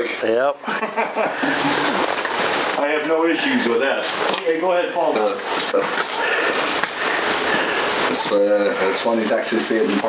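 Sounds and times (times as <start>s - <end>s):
voices talking: 1.4s - 10.0s.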